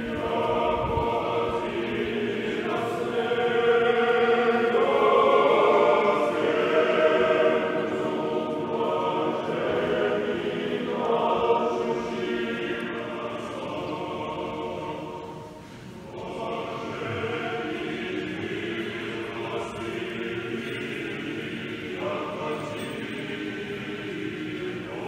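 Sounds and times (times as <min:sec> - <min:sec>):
choir singing unaccompanied chant: 0:00.0 - 0:25.0.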